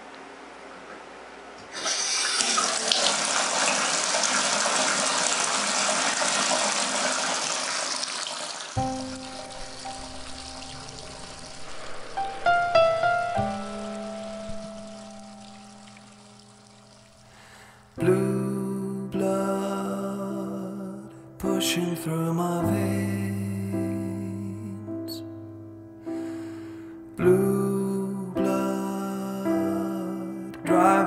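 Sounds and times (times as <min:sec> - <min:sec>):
water gushing into basin: 0:01.7 - 0:17.5
song intro: 0:08.8 - 0:17.4.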